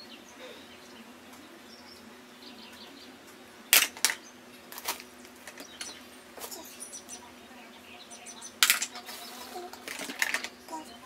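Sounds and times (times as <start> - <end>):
craft items clicking and clattering: 8.6 - 10.6.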